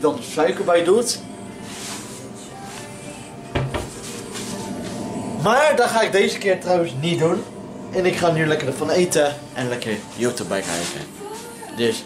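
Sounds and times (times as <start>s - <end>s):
background music: 0.4s - 12.0s
cupboard door knocking shut: 3.5s - 3.9s.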